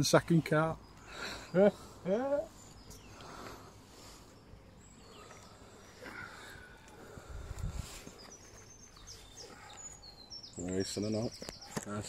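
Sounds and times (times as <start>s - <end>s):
faint high bird chirps: 0.0s - 12.0s.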